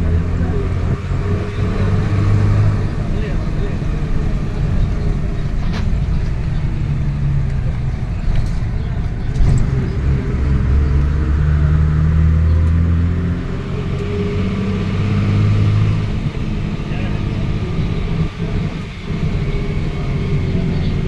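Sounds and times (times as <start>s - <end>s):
bus engine running: 0.0s - 21.0s
road noise: 0.0s - 21.0s.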